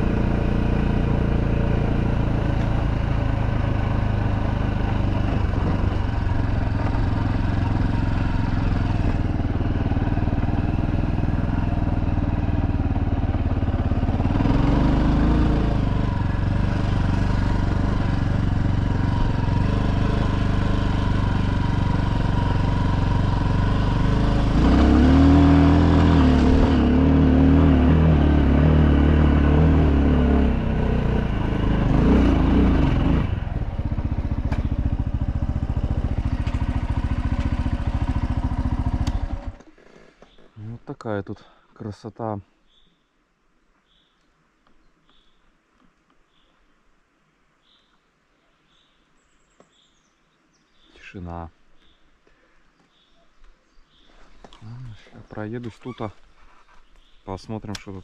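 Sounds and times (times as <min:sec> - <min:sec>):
motorcycle engine running: 0:00.0 - 0:39.7.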